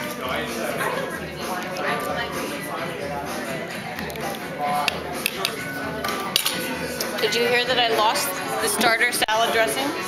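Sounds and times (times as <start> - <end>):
dishes and cutlery clinking: 3.9 - 7.6.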